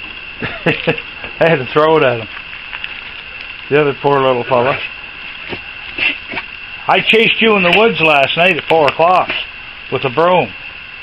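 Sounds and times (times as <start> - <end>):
raccoon eating: 0.0 - 3.7, 4.4 - 8.2
high-pitched hum: 0.0 - 11.0.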